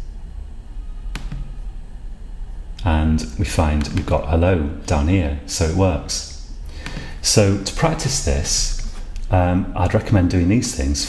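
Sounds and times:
low steady hum: 0:00.0 - 0:11.0
computer mouse click: 0:01.1 - 0:01.5.

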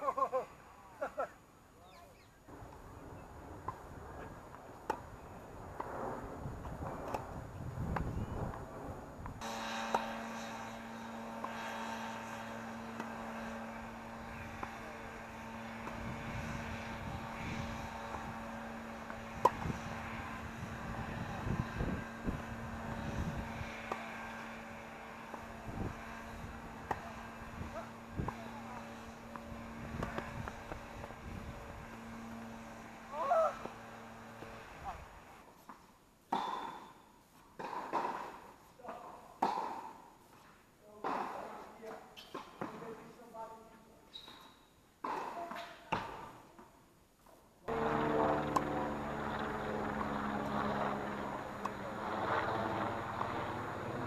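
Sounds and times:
outdoor background noise: 0:00.0 - 0:54.0
steady hum: 0:02.4 - 0:35.7, 0:47.7 - 0:54.0
tennis balls struck by rackets: 0:09.9 - 0:10.3, 0:12.6 - 0:13.4, 0:14.0 - 0:14.8, 0:15.6 - 0:16.2, 0:18.0 - 0:19.8, 0:23.9 - 0:24.5, 0:26.8 - 0:31.2, 0:35.6 - 0:36.9, 0:37.6 - 0:40.4.

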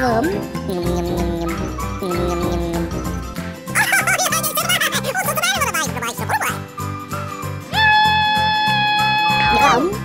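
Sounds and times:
children's music with steady beat: 0:00.0 - 0:07.6
cartoon character vocal noises: 0:00.7 - 0:03.1.

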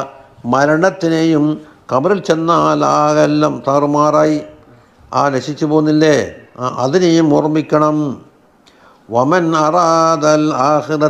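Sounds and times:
man chanting: 0:00.0 - 0:08.3, 0:09.1 - 0:11.0.

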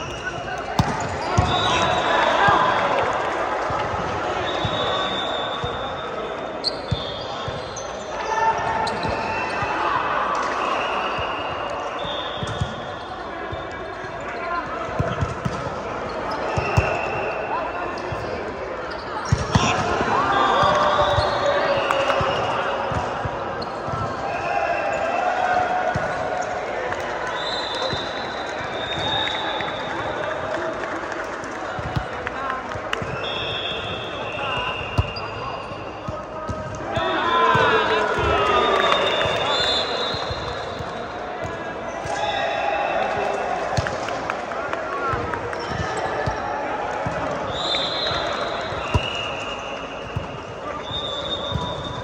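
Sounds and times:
sneaker squeaks on court floor: 0:00.0 - 0:02.0, 0:04.4 - 0:09.7, 0:11.1 - 0:24.0, 0:33.0 - 0:42.3, 0:45.5 - 0:52.0.

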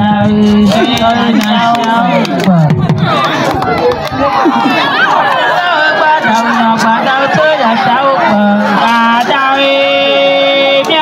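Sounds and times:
many voices singing and calling: 0:00.0 - 0:11.0.

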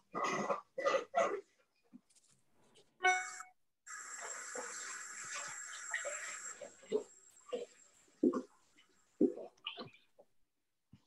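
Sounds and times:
thin high whine: 0:03.1 - 0:09.0
steady hiss: 0:03.9 - 0:08.3.

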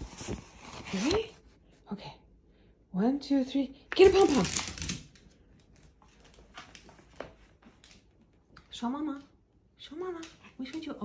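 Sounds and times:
dog claws clicking on wooden floor: 0:03.9 - 0:08.7.

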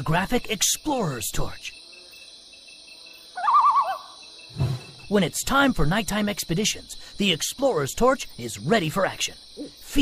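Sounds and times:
insects chirring: 0:00.0 - 0:10.0
warbling animal call: 0:03.4 - 0:04.2.

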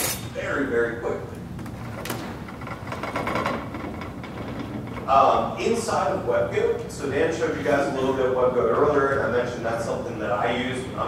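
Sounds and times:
low hum of room noise: 0:00.0 - 0:11.0.

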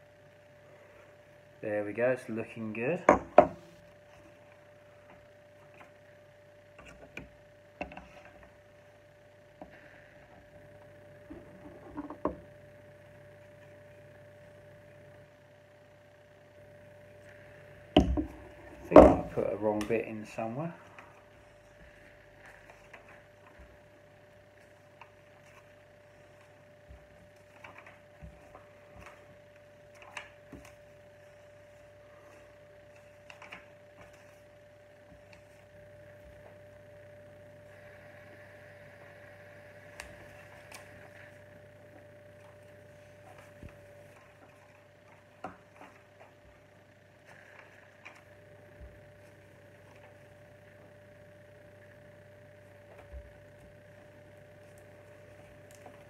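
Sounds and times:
steady hum: 0:00.0 - 0:56.0.

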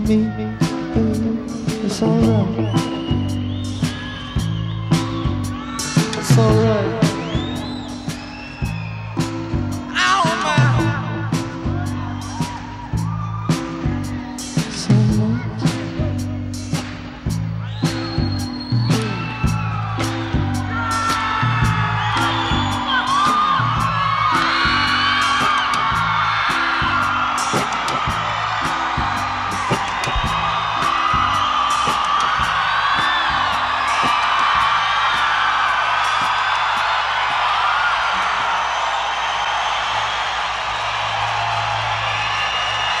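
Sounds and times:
live rock band playing: 0:00.0 - 0:36.3
audience whooping and cheering: 0:00.0 - 0:43.0
bass riff: 0:10.6 - 0:34.0
drum hits: 0:16.6 - 0:37.0.

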